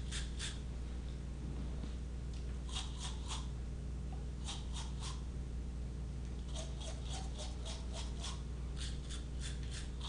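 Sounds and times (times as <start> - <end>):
toothbrush scrubbing teeth: 0.0 - 0.6, 2.6 - 3.5, 6.5 - 10.0.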